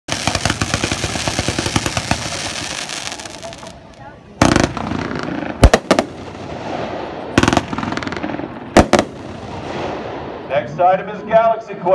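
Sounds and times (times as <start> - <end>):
fireworks crackling: 0.1 - 10.5.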